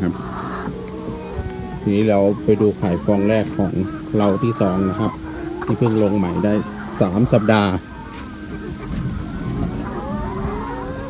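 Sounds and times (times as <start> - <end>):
hens calling: 0.0 - 11.0
low steady hum: 0.0 - 11.0.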